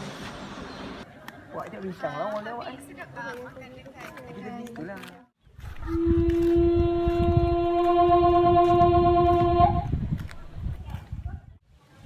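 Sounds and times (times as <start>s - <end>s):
dialogue: 1.1s - 5.4s
deep rumble: 5.6s - 10.6s
long steady tone: 5.9s - 9.9s.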